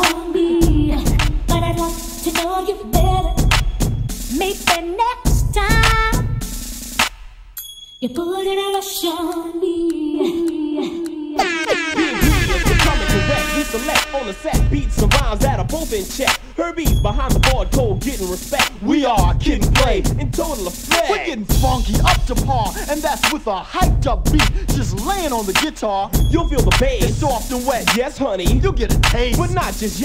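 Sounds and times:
rapping over a beat: 0:00.0 - 0:06.5, 0:08.0 - 0:30.0
heavy bass hits: 0:12.2 - 0:18.1, 0:19.2 - 0:20.4, 0:21.5 - 0:22.7, 0:23.8 - 0:24.9.

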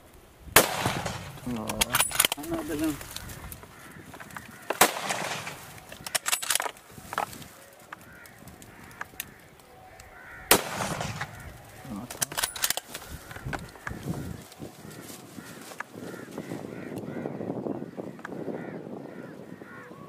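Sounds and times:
sharp bangs: 0:00.6 - 0:03.0, 0:04.6 - 0:06.7, 0:10.5 - 0:13.0.

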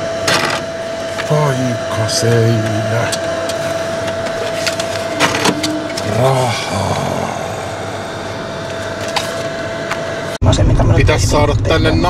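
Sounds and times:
constant mid-high tone: 0:00.0 - 0:10.4
background rumble and hiss: 0:10.4 - 0:12.0.

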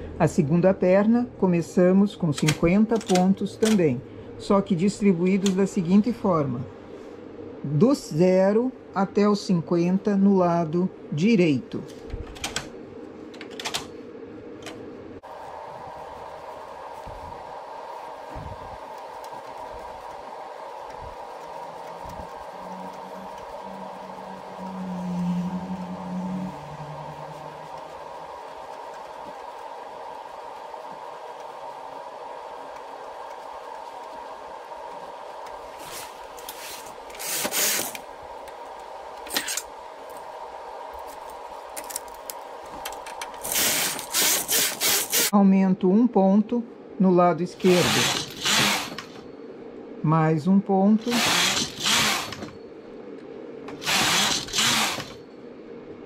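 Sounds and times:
faint hum: 0:00.0 - 0:56.0
knitting carriage strokes: 0:17.9 - 0:31.8.

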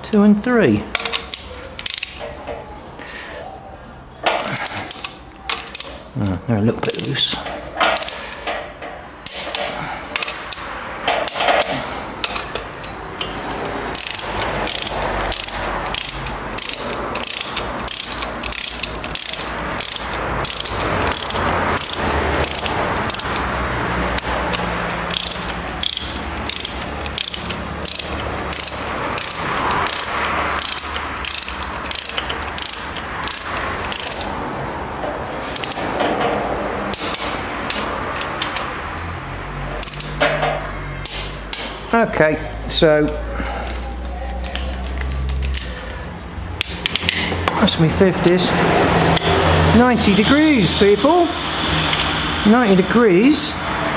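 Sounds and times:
torque wrench ratchet clicking: 0:00.9 - 0:02.3, 0:04.3 - 0:06.0, 0:06.8 - 0:08.3, 0:09.2 - 0:34.5, 0:35.5 - 0:36.0, 0:36.8 - 0:38.7, 0:39.8 - 0:40.2, 0:41.0 - 0:41.8, 0:46.6 - 0:52.9.

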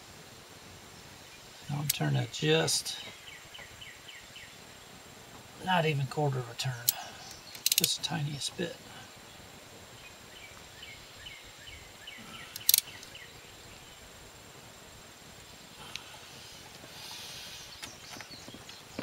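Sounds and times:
faint chirping: 0:00.8 - 0:19.0
ratchet click: 0:07.6 - 0:08.0, 0:12.6 - 0:13.0.

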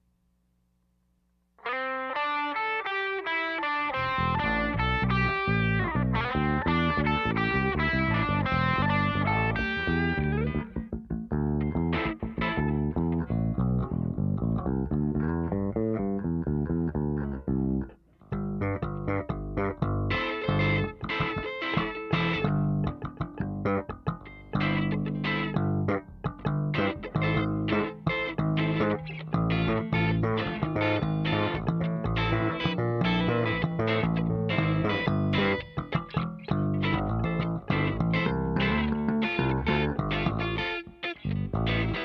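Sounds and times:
electric bass guitar plucked: 0:01.6 - 0:42.0.

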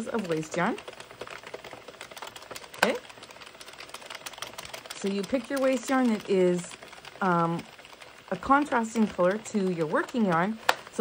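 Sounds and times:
knitting machine needles clicking: 0:00.0 - 0:11.0.

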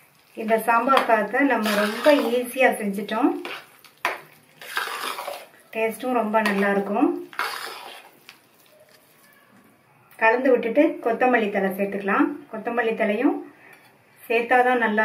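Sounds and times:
spoon scraping through rice: 0:00.9 - 0:02.7, 0:03.4 - 0:09.4.

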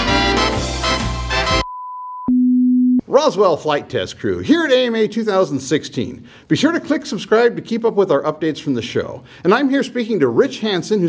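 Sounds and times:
high sine tone: 0:01.6 - 0:03.0.

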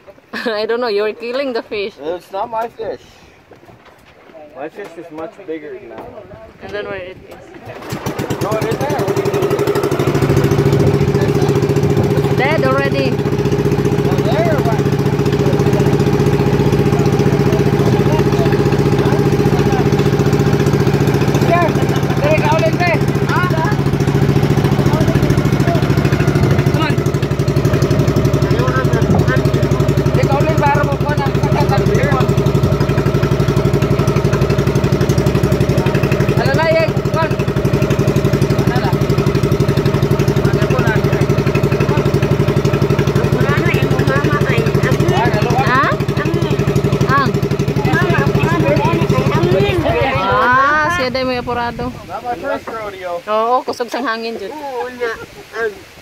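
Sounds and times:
small boat engine running: 0:06.7 - 0:55.2.

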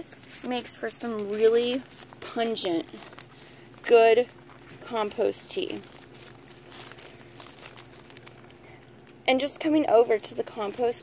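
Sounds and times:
dry leaves rustling and crinkling: 0:00.3 - 0:09.1, 0:09.7 - 0:11.0.

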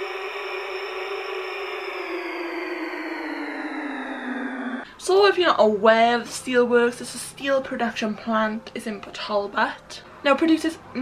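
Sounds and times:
hissing drone with low hum: 0:00.0 - 0:04.8.

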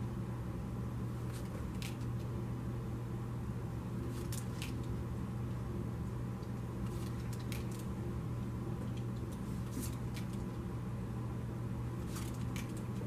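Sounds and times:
steady low hum: 0:00.0 - 0:13.0
cards slapping and sliding: 0:12.0 - 0:13.0.

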